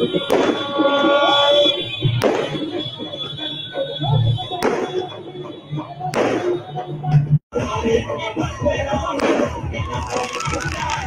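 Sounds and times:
firecracker bang: 0:00.0 - 0:00.9, 0:02.1 - 0:02.8, 0:06.1 - 0:06.6, 0:09.1 - 0:11.0
crowd noise: 0:00.0 - 0:11.0.

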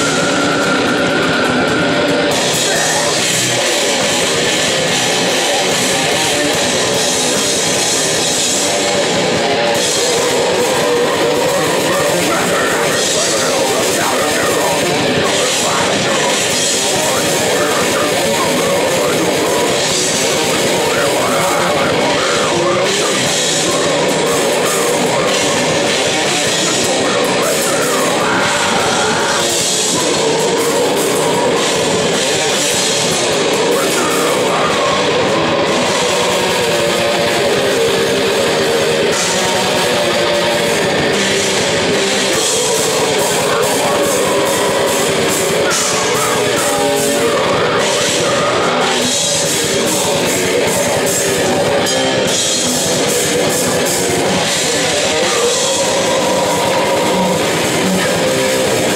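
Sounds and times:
distorted electric guitar: 0:00.0 - 0:58.9
drum kit: 0:00.0 - 0:58.9.

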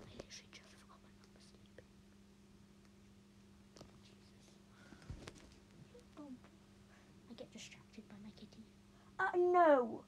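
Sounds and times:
low steady hum: 0:00.0 - 0:10.0
faint whispered breaths: 0:04.0 - 0:05.4, 0:06.8 - 0:09.2.

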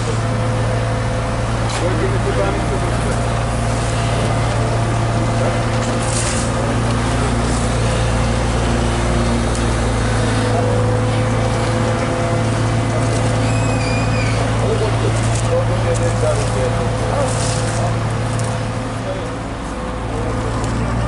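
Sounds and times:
road roller diesel engine droning: 0:00.0 - 0:21.0
rakes scraping asphalt: 0:01.6 - 0:19.1.

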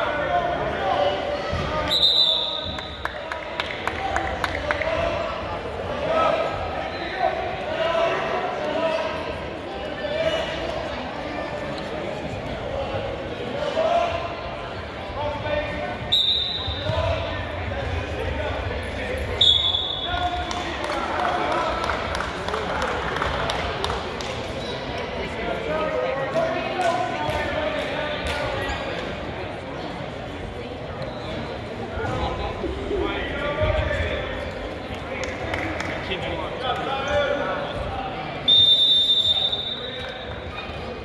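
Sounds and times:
spectators and coaches calling out: 0:00.0 - 0:41.0
referee's whistle blasts: 0:01.8 - 0:03.0, 0:16.0 - 0:16.9, 0:19.4 - 0:20.2, 0:38.4 - 0:40.2.

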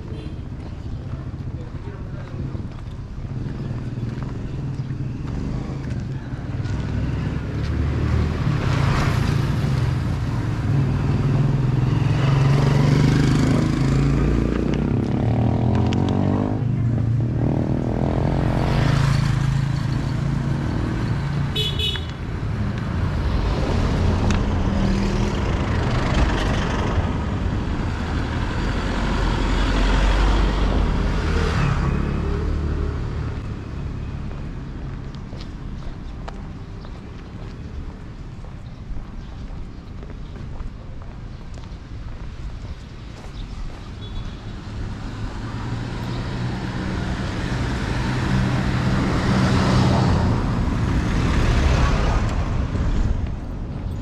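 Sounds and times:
vehicles passing: 0:00.0 - 0:54.0.

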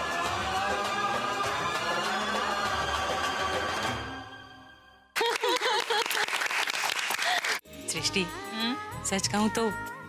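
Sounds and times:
small group clapping: 0:05.2 - 0:07.6.

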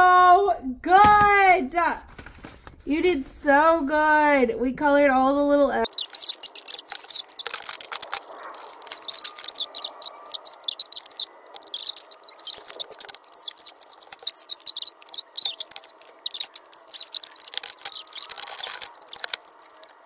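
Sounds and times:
felt-tip marker squeaking on paper: 0:05.8 - 0:20.0.

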